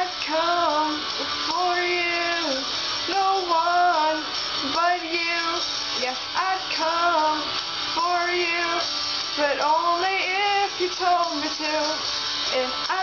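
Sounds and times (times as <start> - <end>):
woman singing slow melody: 0.0 - 13.0.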